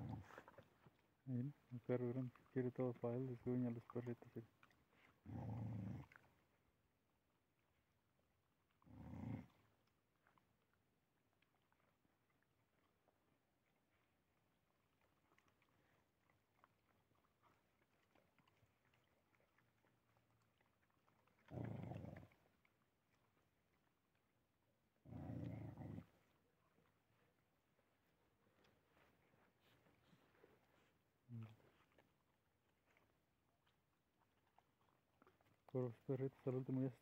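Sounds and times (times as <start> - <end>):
dog growling: 0.0 - 0.6, 5.2 - 6.3, 8.8 - 9.7, 21.3 - 22.5, 25.0 - 26.3
faint chewing: 0.0 - 37.0.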